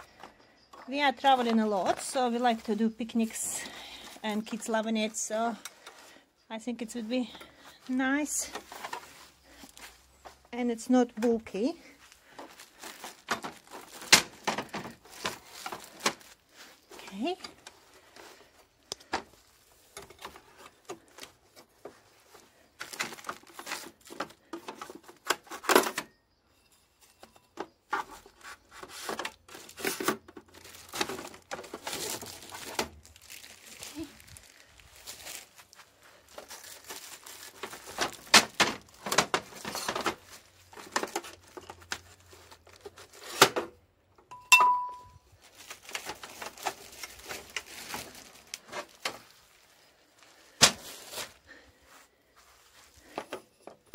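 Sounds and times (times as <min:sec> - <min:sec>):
plastic film rustling: 0:12.0 - 0:18.5, 0:22.0 - 0:25.0, 0:28.3 - 0:43.4, 0:45.3 - 0:51.6.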